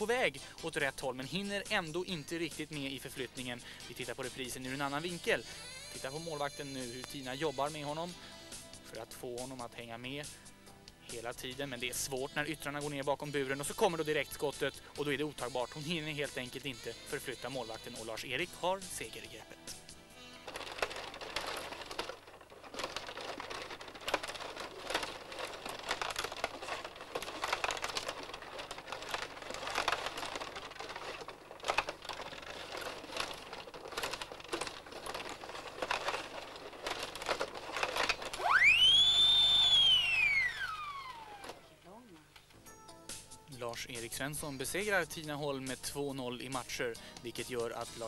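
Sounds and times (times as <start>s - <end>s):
table hockey game clattering: 19.7s - 40.7s
whistling tone sweeping: 38.4s - 41.4s.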